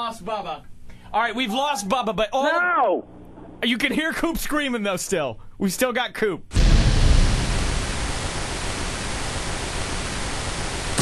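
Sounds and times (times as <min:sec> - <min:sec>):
loud static-like rushing hiss: 0:06.5 - 0:11.0.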